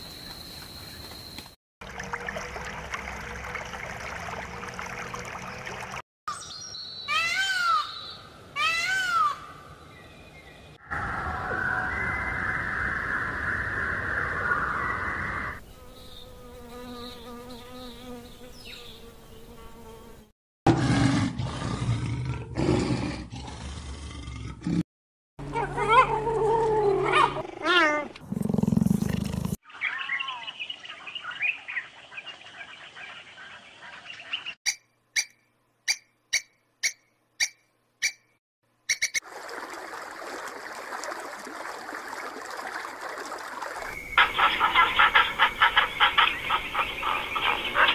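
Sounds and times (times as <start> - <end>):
lion roaring: 20.7 - 24.8
animal chirping calls: 44.2 - 47.9.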